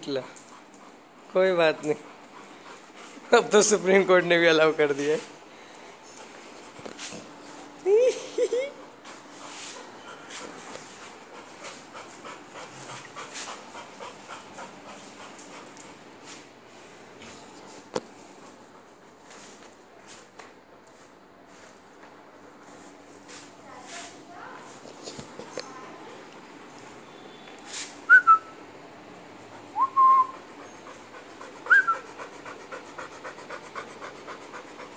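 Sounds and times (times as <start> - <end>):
dog panting: 0.1 - 19.7, 29.2 - 34.9.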